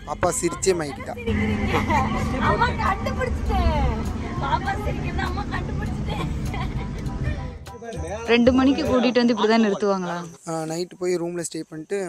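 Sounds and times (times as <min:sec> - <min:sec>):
engine and road rumble: 0:00.0 - 0:09.0
people talking: 0:00.1 - 0:06.6, 0:07.9 - 0:12.0.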